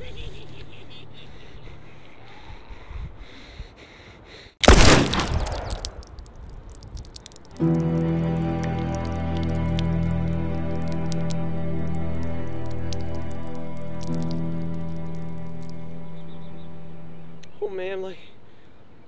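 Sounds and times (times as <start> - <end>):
revolver gunshot: 4.6 - 5.9
slow music with held chords: 7.6 - 17.5.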